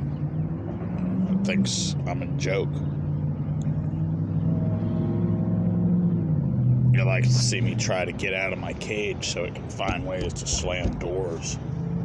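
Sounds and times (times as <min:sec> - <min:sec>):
vehicle engine running: 0:09.6 - 0:12.0.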